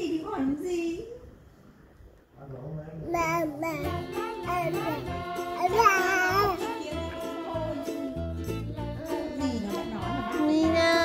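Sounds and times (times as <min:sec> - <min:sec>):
child-like voice singing: 0:03.2 - 0:11.0.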